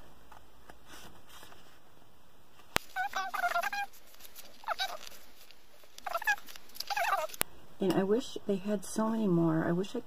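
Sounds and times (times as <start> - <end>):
bird rapid warbling calls: 2.9 - 4.0, 4.6 - 5.0, 6.0 - 7.4.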